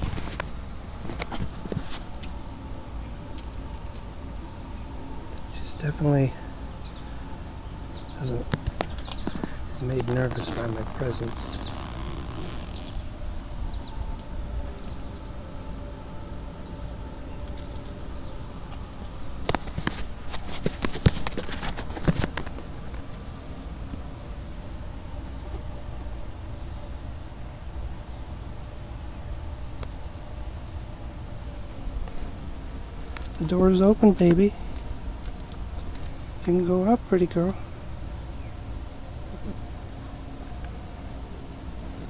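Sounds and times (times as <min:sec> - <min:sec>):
high insect trill: 0:00.0 - 0:42.0
netting rustling: 0:08.6 - 0:13.3
zipper being drawn open: 0:10.3 - 0:13.0.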